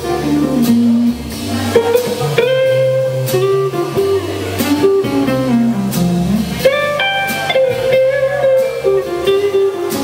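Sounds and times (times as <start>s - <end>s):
electric guitar: 0.0s - 10.0s
walking double bass: 0.0s - 10.0s.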